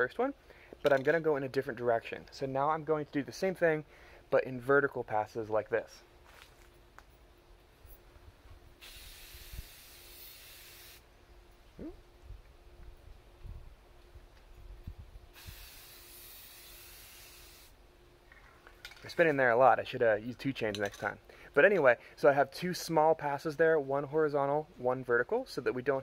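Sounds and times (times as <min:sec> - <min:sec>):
spray paint can hissing: 0:08.8 - 0:11.0, 0:15.4 - 0:17.8.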